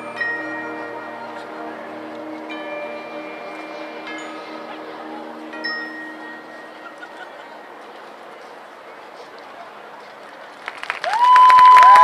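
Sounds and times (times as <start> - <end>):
chimes and mallet percussion: 0.0 - 7.7
marching band soft sustained chord: 0.0 - 9.4.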